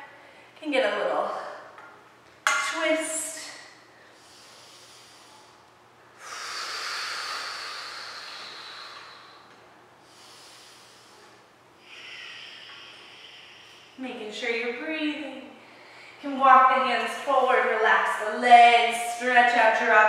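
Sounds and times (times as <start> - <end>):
woman breathing: 3.8 - 14.0, 15.6 - 16.3.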